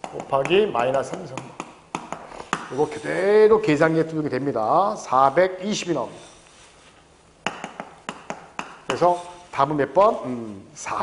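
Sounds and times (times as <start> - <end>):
chalk tapping on blackboard: 0.0 - 3.0, 7.4 - 9.4.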